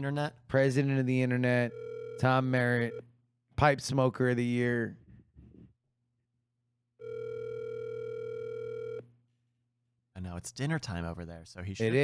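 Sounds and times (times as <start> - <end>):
telephone ringback tone: 1.7 - 2.3, 7.0 - 9.0.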